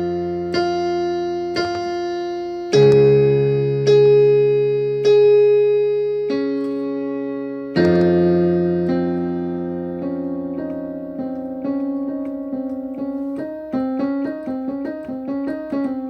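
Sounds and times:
slow piano music: 0.0 - 16.0.

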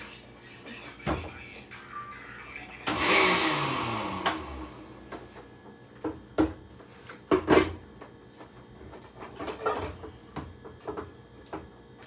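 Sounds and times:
blender motor whirring: 2.8 - 5.3.

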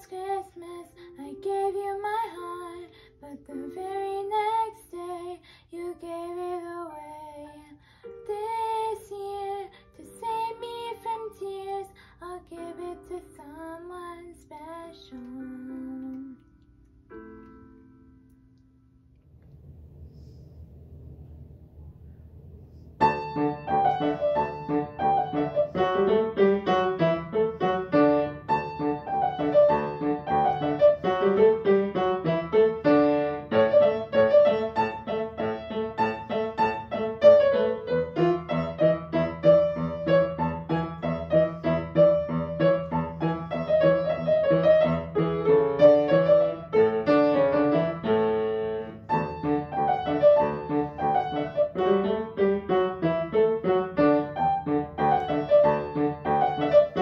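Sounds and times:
upright piano playing: 16.9 - 18.9, 23.0 - 57.0.

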